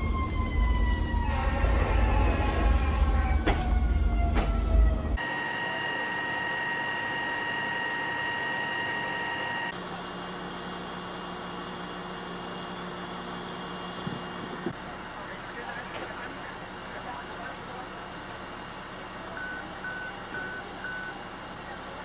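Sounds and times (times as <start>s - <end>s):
siren falling in pitch: 0.0s - 9.7s
fire engine pump whine: 0.0s - 22.0s.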